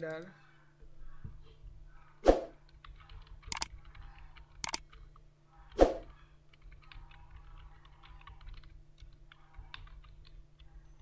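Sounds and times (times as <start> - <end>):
keyboard key clicks: 2.6 - 5.2.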